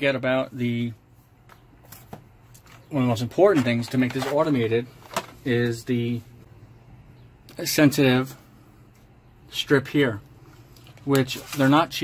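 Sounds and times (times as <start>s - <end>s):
speech: 0.0s - 1.0s, 2.9s - 6.3s, 7.5s - 8.4s, 9.5s - 10.3s, 11.0s - 12.0s.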